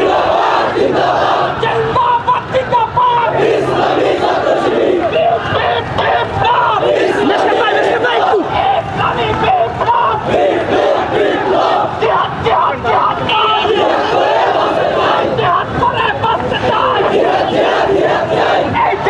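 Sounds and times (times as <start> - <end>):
crowd shouting slogans: 0.0 - 19.0.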